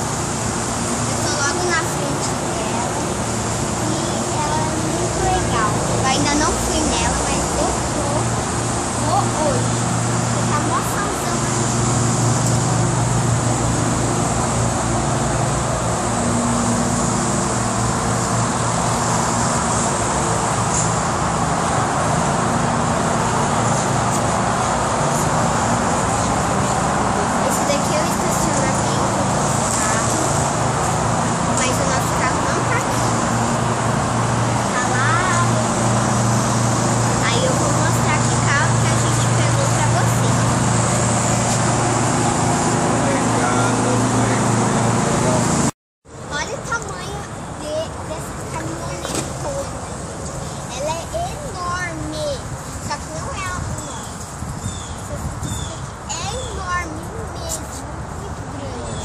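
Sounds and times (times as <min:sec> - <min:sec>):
constant low hum: 0:00.0 - 0:59.0
road traffic noise: 0:00.0 - 0:59.0.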